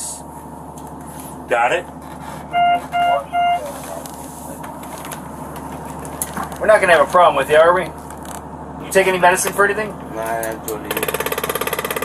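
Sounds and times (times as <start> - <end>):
low hum of ambulance compartment: 0.0 - 12.0
short electronic beeps: 2.5 - 3.7.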